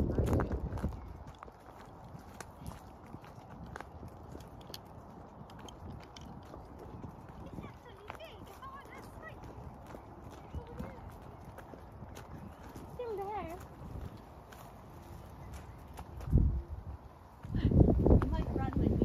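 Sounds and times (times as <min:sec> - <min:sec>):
footsteps on gravel: 0:00.0 - 0:19.0.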